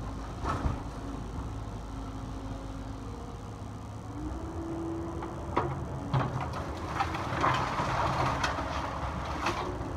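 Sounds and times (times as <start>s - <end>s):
excavator diesel engine: 0.0s - 9.9s
debris crunching: 6.2s - 9.9s.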